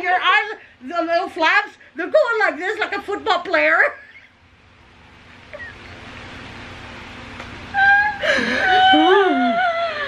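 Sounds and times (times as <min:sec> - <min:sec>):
breathy wheezing laughter: 0:08.2 - 0:10.0.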